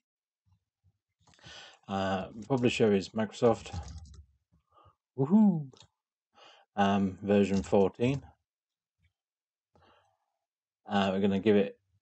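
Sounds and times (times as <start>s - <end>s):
man breathing near microphone: 1.3s - 1.9s, 6.4s - 6.7s
man saying uh: 5.2s - 5.7s.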